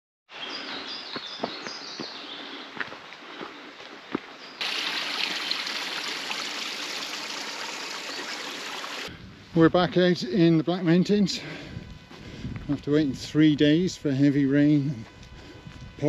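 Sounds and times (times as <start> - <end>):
footsteps on stony path: 0.6 - 4.5, 11.8 - 12.8, 14.8 - 16.0
stream trickling over rocks: 4.6 - 9.1.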